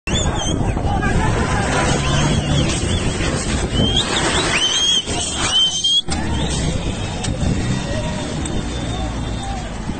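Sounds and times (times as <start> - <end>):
distant crowd voices: 0.1 - 9.9
vehicle engine and road noise: 0.1 - 9.9.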